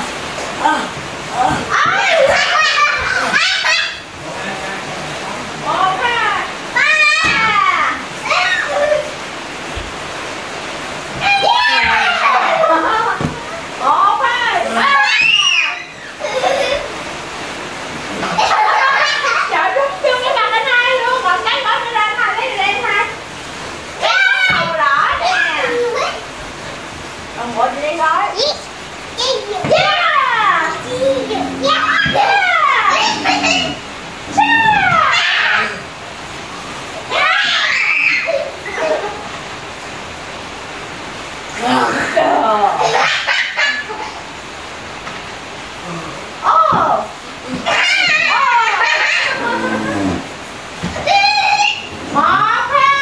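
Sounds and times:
steady hiss: 0:00.0 - 0:53.0
child squealing: 0:01.5 - 0:04.1, 0:08.3 - 0:09.2, 0:11.2 - 0:12.6, 0:14.7 - 0:16.4, 0:30.7 - 0:35.8, 0:37.1 - 0:38.9, 0:47.7 - 0:50.2, 0:51.0 - 0:51.9.

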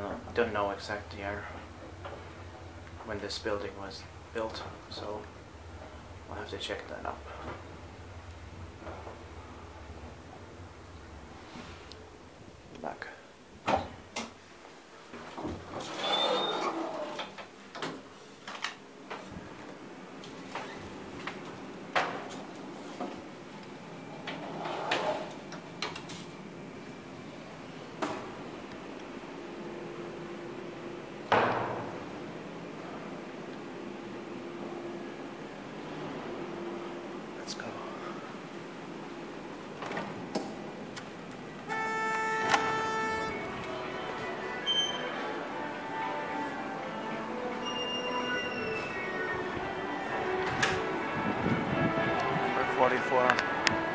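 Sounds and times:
elevator doors scraping open: 0:04.4 - 0:11.9, 0:15.6 - 0:17.4, 0:24.1 - 0:25.5, 0:41.6 - 0:51.9
horn-like tone: 0:41.7 - 0:53.9.

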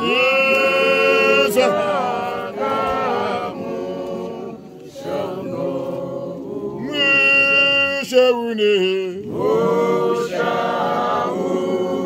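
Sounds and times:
group singing unaccompanied: 0:00.0 - 0:12.0.

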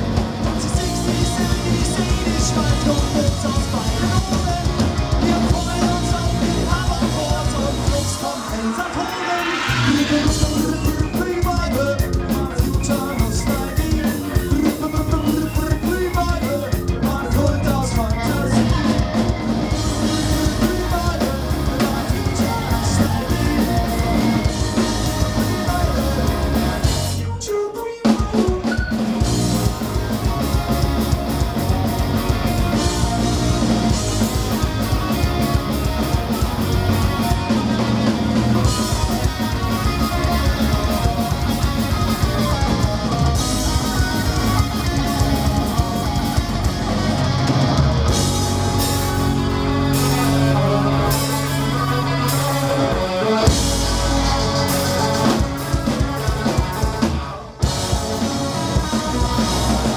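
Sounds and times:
punk rock band playing: 0:00.0 - 0:59.9.

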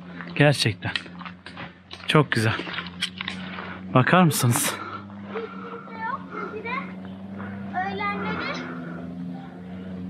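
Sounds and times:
steady low hum: 0:00.0 - 0:10.0
child calling out: 0:07.7 - 0:08.7.

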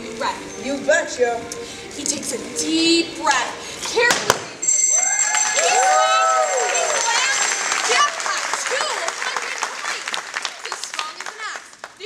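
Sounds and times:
high ringing tone: 0:04.6 - 0:08.0
voices whooping: 0:04.9 - 0:09.1.

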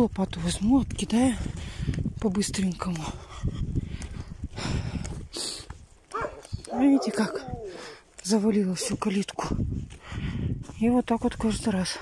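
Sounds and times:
wind on microphone: 0:00.0 - 0:08.0, 0:08.8 - 0:12.0
footsteps crunching on snow: 0:00.0 - 0:12.0.

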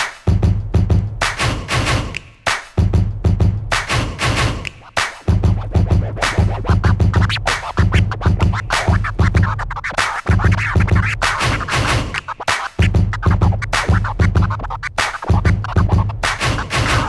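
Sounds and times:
turntable scratching: 0:00.0 - 0:17.0
bass-heavy sample chopped: 0:04.9 - 0:17.0.

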